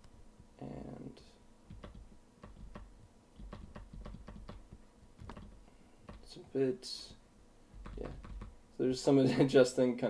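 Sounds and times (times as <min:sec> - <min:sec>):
faint low hum: 0:00.0 - 0:10.0
computer keyboard and mouse clicks: 0:01.7 - 0:06.3, 0:07.8 - 0:08.6.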